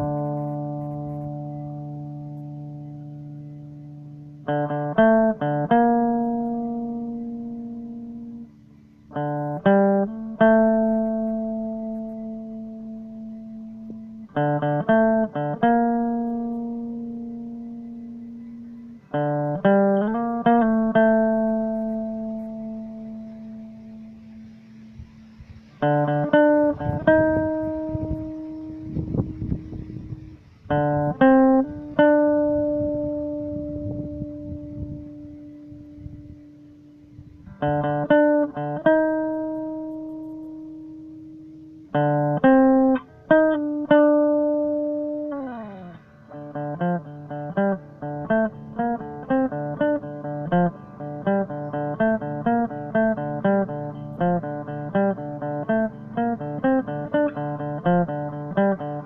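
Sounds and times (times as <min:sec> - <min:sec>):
electric guitar riff: 0:00.0 - 0:59.0.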